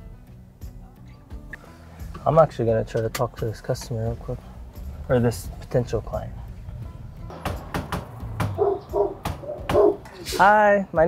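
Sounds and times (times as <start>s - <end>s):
knocking on door: 7.3s - 10.0s
dog barking: 8.5s - 10.1s.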